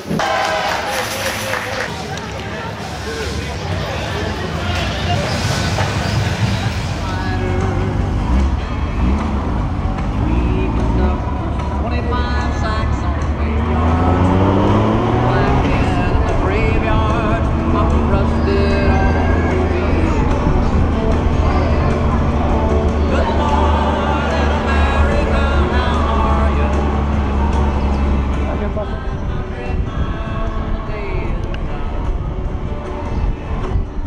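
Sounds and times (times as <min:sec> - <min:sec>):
voices: 0:00.0 - 0:33.9
motorcycle engines running: 0:02.0 - 0:34.0
music: 0:05.9 - 0:34.0.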